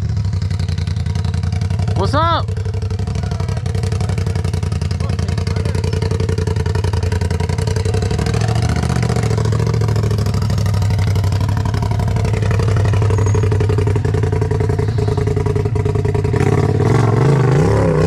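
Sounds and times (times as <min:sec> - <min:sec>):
buggy engine running at low revs: 0:00.0 - 0:18.0.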